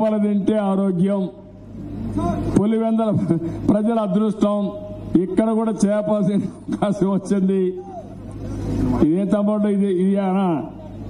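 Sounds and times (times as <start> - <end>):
man speaking into a microphone: 0.0 - 1.5, 2.1 - 8.0, 9.0 - 11.0
low steady hum: 0.0 - 11.0.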